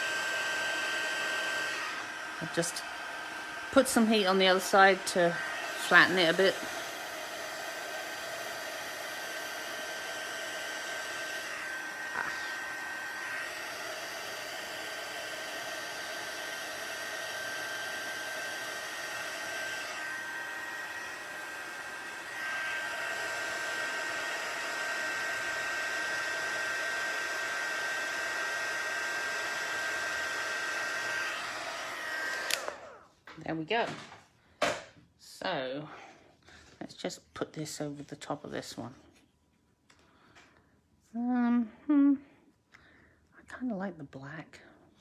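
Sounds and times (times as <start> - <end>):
heat gun blowing with fan whine: 0.0 - 33.1.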